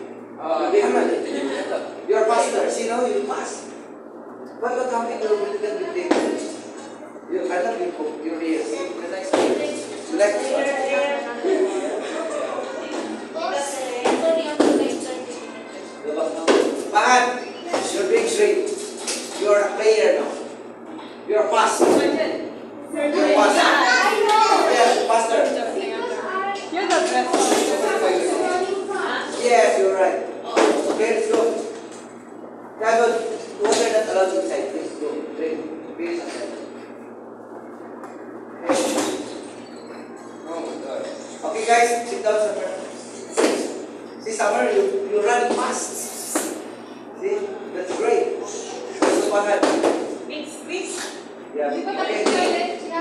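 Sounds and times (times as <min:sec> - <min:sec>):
room noise: 0:00.0 - 0:53.0.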